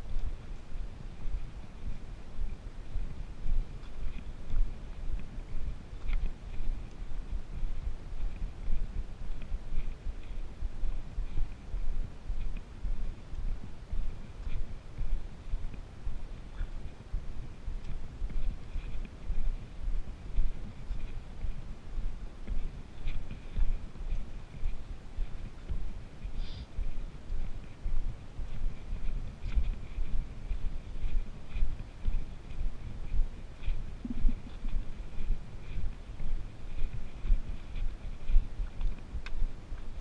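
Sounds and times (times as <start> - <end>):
footsteps on dirt trail: 0.0 - 40.0
wind on microphone: 0.0 - 40.0.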